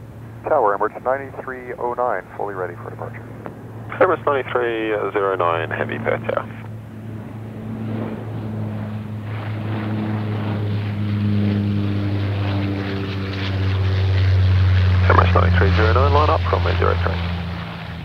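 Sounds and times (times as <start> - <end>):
jet engines droning: 0.0 - 18.0.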